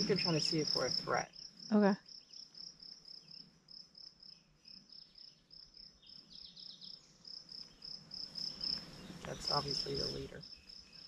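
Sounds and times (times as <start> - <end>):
faint bird chirps: 0.0 - 11.0
insects chirping: 0.0 - 11.0.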